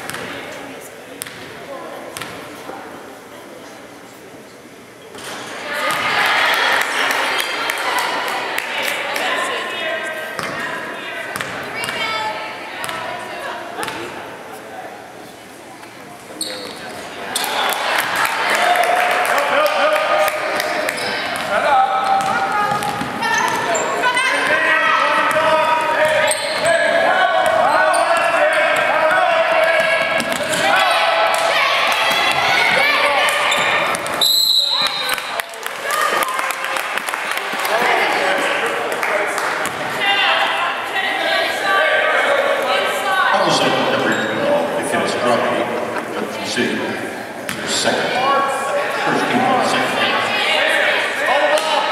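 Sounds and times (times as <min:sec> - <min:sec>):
crowd and players shouting: 0:05.6 - 0:14.4, 0:17.1 - 0:51.9
referee's whistle: 0:34.2 - 0:35.2.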